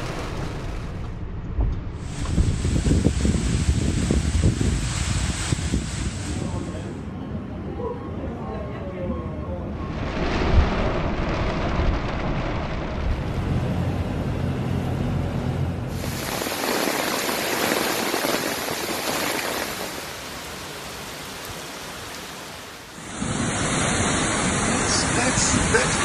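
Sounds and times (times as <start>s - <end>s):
torrential rain hissing: 0.0s - 1.1s, 2.0s - 7.1s, 15.9s - 26.0s.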